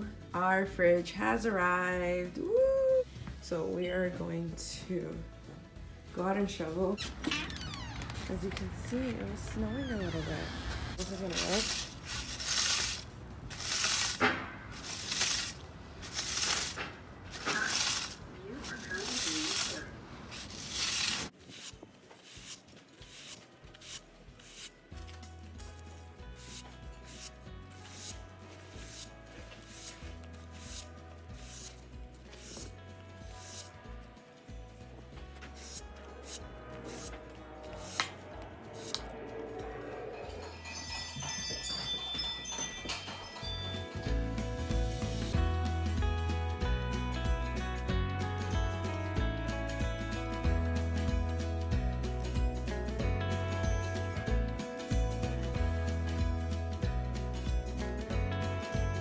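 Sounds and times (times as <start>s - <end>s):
push broom sweeping snow: 11.0s - 24.7s, 26.4s - 33.8s, 35.5s - 38.1s
chimes: 40.1s - 44.4s
music with beat and bass: 43.5s - 59.0s.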